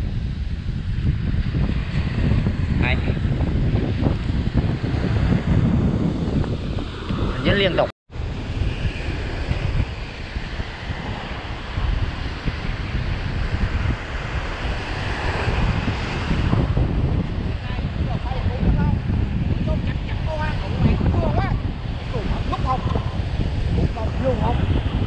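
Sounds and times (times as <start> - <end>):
waves breaking on shore: 0.0 - 25.0
wind buffeting microphone: 0.0 - 25.0.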